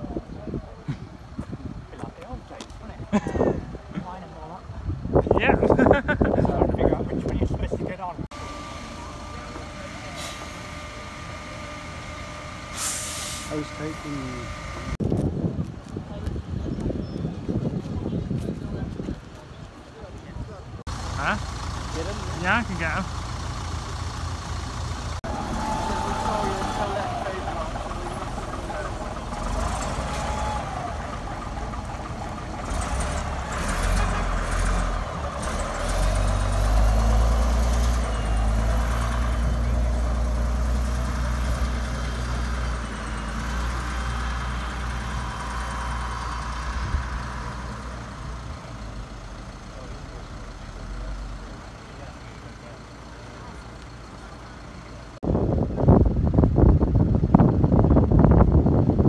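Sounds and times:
people talking: 0:01.9 - 0:11.2, 0:13.5 - 0:15.0, 0:17.7 - 0:23.1, 0:25.8 - 0:29.2, 0:51.7 - 0:53.8
engine idling: 0:08.3 - 0:15.0, 0:20.8 - 0:36.9, 0:41.0 - 0:55.2
air brakes hissing: 0:09.9 - 0:11.0, 0:12.2 - 0:14.7.

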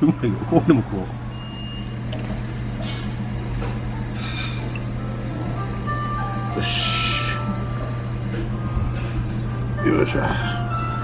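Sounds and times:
restaurant dining room hum: 0:00.0 - 0:11.0.

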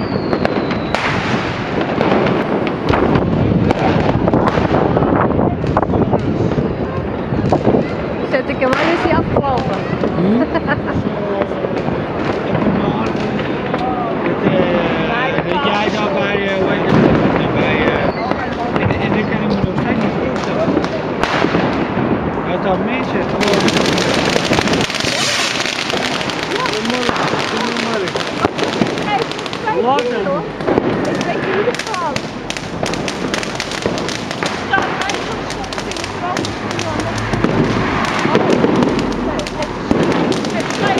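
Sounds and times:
firecrackers and fireworks banging: 0:00.0 - 0:40.9.

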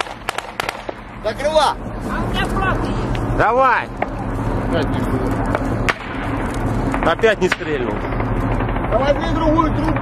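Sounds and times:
low engine drone: 0:00.0 - 0:10.0.

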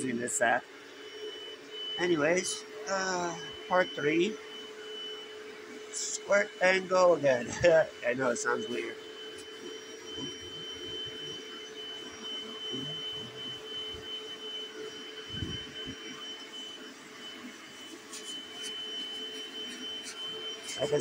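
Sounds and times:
carpet cleaner motor whine: 0:00.0 - 0:21.0
nozzle rubbing on carpet: 0:15.0 - 0:21.0.

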